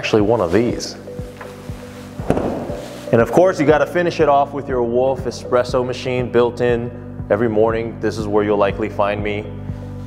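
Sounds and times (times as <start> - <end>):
background music with low beat: 0.0 - 10.0.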